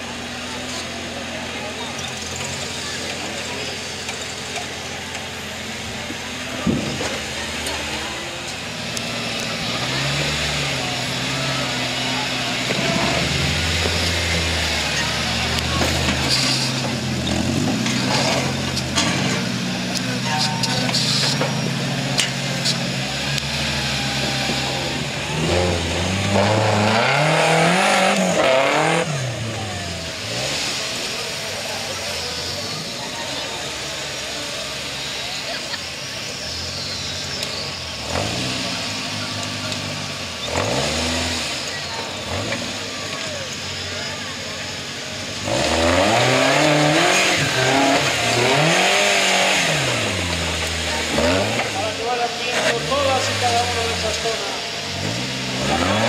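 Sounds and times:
buggy engine revving: 0.0 - 56.0.

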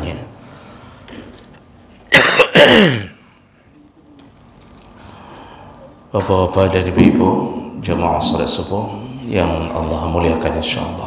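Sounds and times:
man coughing: 2.1 - 3.2.

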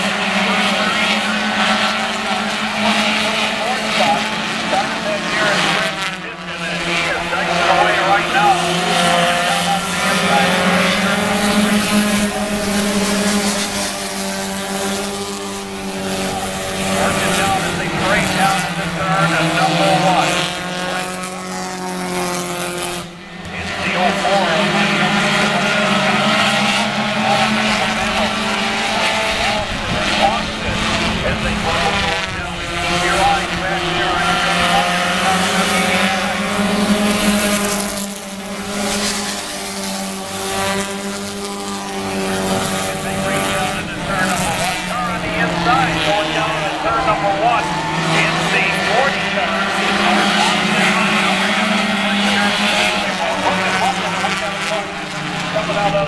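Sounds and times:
race car engines: 0.0 - 56.0.

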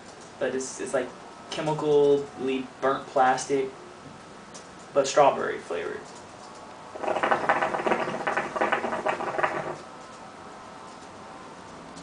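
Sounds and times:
hookah water bubbling: 7.0 - 9.8.

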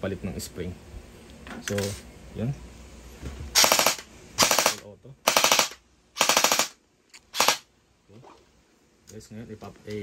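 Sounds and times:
gel blaster full-auto bursts: 3.6 - 7.7.

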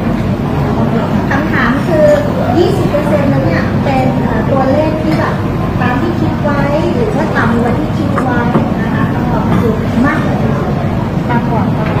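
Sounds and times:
low rumble of room noise: 0.0 - 12.0
indistinct voices: 0.4 - 12.0.

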